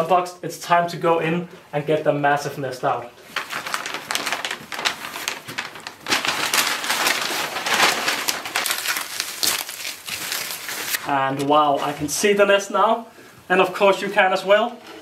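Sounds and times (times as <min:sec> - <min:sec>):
paper packing material crinkling: 0:03.2 - 0:12.1.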